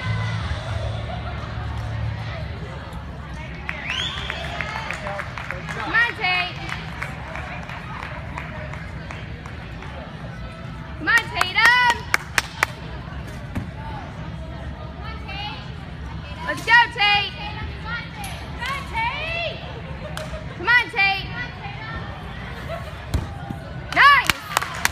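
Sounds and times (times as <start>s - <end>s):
low rumble of gym hall: 0.0s - 24.9s.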